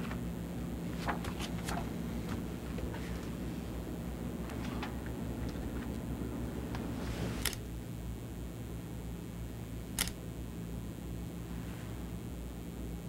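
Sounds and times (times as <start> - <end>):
low room hum: 0.0 - 13.0
sharp clicks: 10.0 - 10.2.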